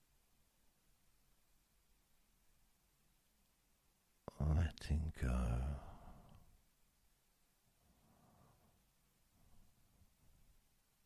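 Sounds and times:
man speaking softly: 4.3s - 6.4s.

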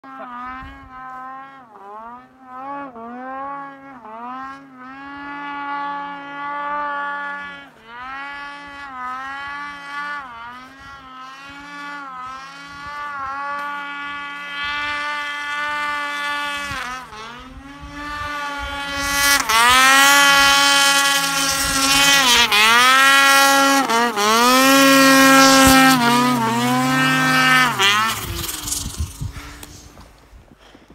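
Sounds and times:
snowmobile engine revving: 0.0s - 30.8s.

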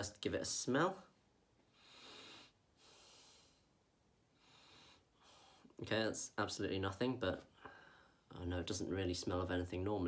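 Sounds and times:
person sniffing: 1.8s - 3.7s.

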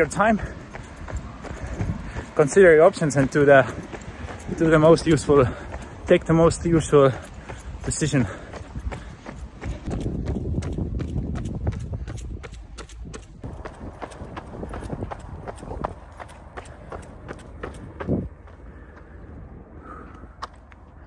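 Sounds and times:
running footsteps on pavement: 0.0s - 21.0s.

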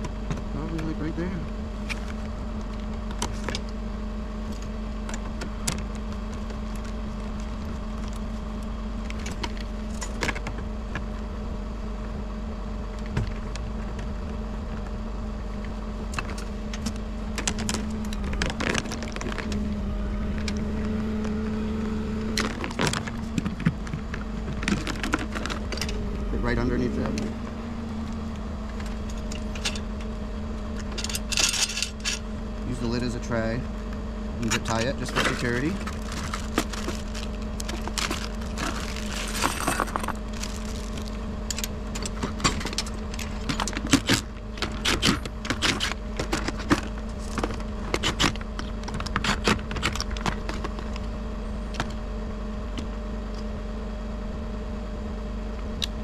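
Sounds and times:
truck engine humming: 0.0s - 56.0s
tools clicking and rattling: 28.7s - 30.1s, 30.8s - 32.2s, 34.4s - 50.9s.

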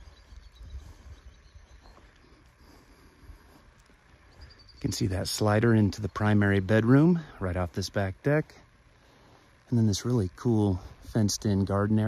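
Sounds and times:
insects chirping: 0.0s - 11.8s.

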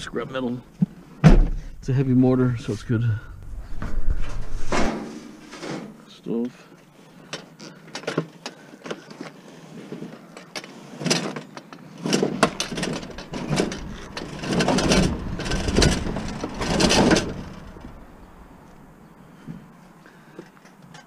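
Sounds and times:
metal stove scraping on asphalt: 3.7s - 6.1s, 9.0s - 18.4s.

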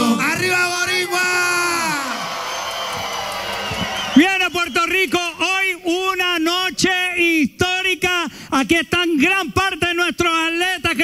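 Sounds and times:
audience cheering and applauding: 0.8s - 5.4s.

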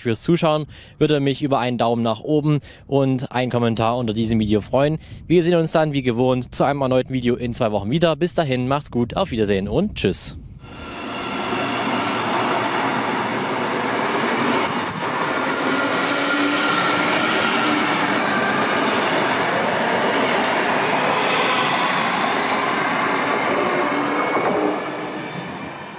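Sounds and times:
faint traction whine: 10.6s - 23.6s
train rolling past: 10.6s - 25.9s.

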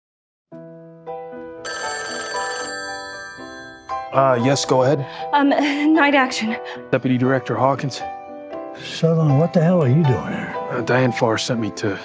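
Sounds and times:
music: 0.5s - 12.0s
telephone ringing: 1.6s - 4.6s.

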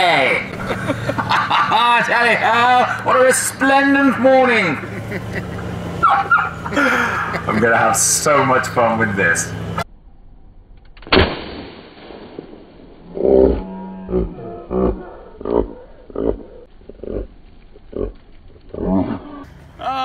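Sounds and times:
confetti cannon bang: 11.1s - 12.6s.

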